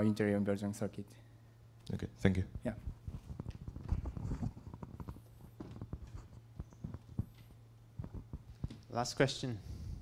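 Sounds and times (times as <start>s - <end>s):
faint footsteps on stage: 2.8s - 9.0s.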